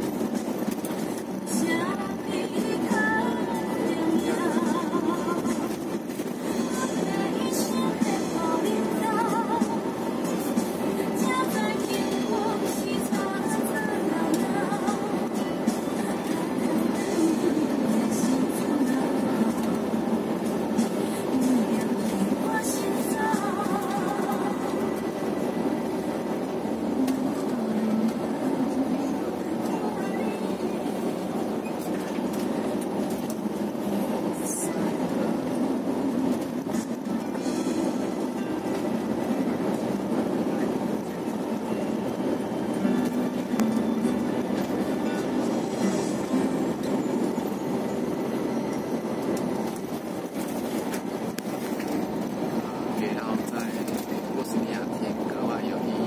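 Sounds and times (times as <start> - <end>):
bus engine and road noise: 0.0 - 56.0
music playing: 0.0 - 56.0.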